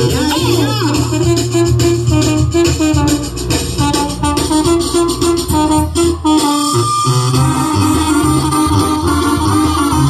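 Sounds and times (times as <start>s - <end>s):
brass band playing dance tune: 0.0s - 10.0s.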